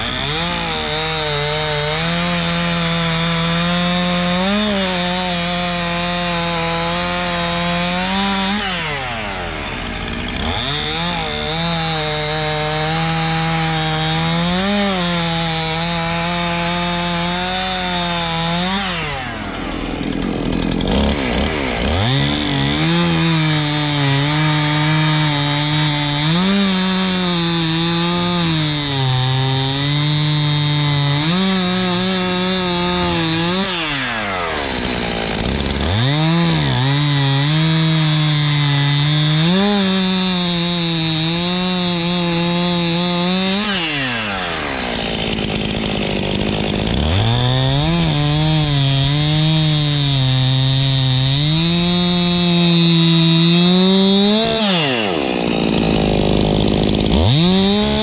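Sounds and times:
chainsaw cutting wood: 0.0s - 58.0s.

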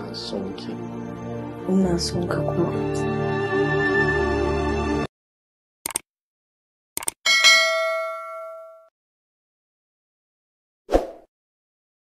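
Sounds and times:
notification bell ding: 7.3s - 8.9s.

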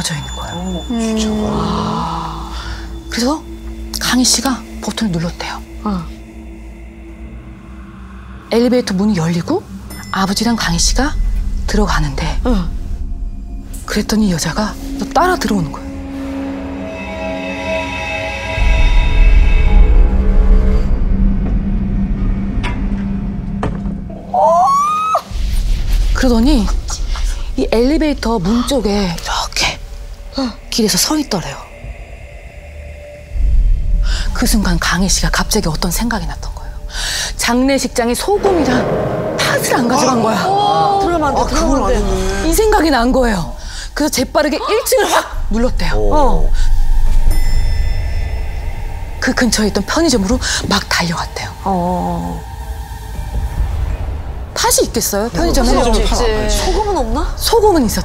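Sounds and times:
high bell-like chime: 0.0s - 1.4s, 47.2s - 49.4s
low rumbling drone: 0.0s - 24.6s, 25.3s - 44.6s, 45.3s - 58.0s.

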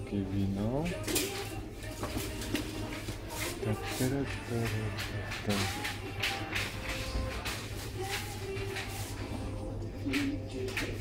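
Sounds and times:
faint piped music: 0.0s - 11.0s.

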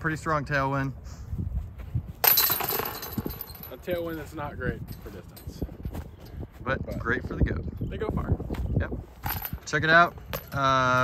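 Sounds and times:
metal chains rattling and clinking: 2.2s - 5.9s, 9.2s - 11.0s.

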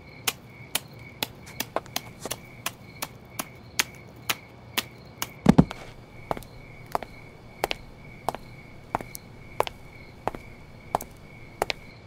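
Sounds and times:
sharp taps: 1.5s - 3.5s, 5.5s - 12.0s
heavy low thump: 5.5s - 11.8s.

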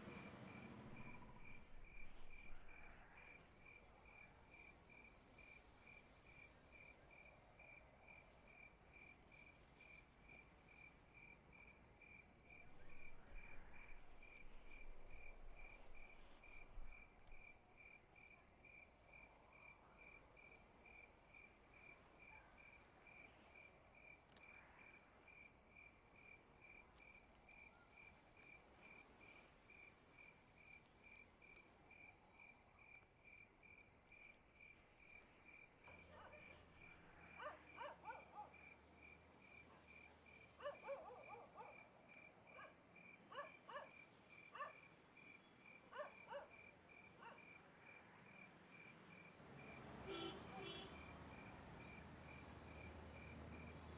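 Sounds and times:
crickets chirping: 0.2s - 53.9s.

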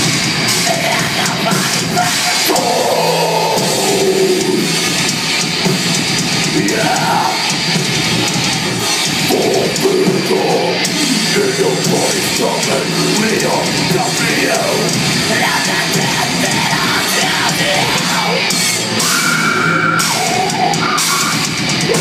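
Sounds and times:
distorted electric guitars: 0.0s - 22.0s
drum kit: 0.0s - 22.0s
heavy metal band playing live: 0.0s - 22.0s.

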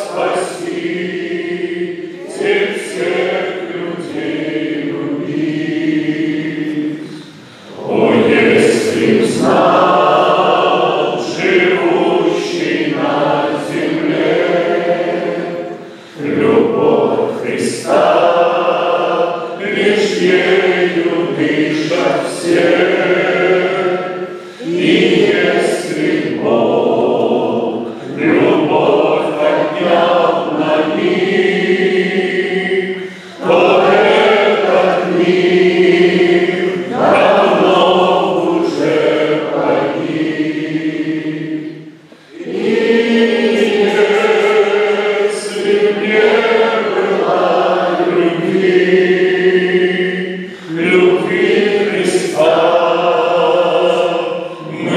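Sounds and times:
men singing a hymn together: 0.0s - 54.9s.

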